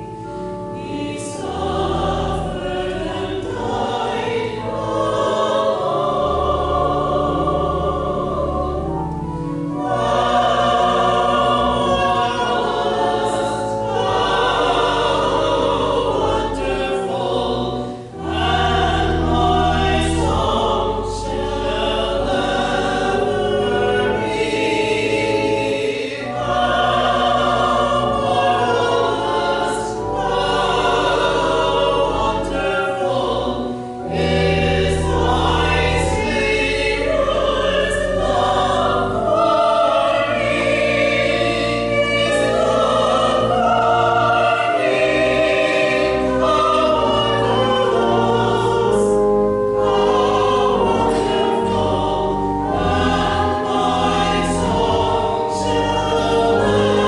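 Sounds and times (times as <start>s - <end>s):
church choir singing: 0.0s - 57.0s
pipe organ bass notes: 0.0s - 57.0s.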